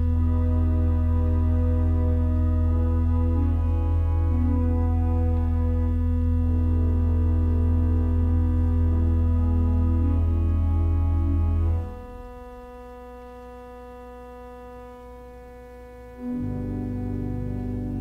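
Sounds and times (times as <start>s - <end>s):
church organ chords: 0.0s - 18.0s
deep organ pedal bass: 0.0s - 18.0s.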